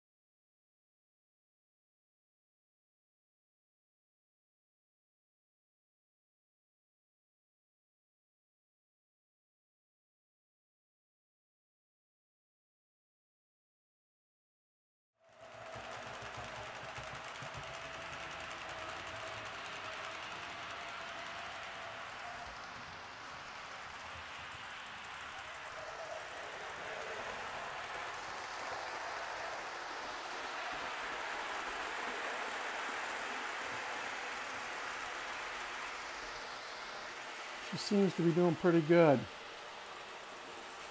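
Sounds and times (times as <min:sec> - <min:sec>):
model train motor whirring: 0:15.2 - 0:40.9.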